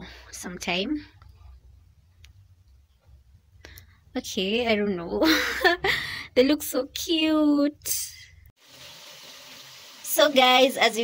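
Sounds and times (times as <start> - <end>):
potato slices sizzling in oil: 8.6 - 11.0.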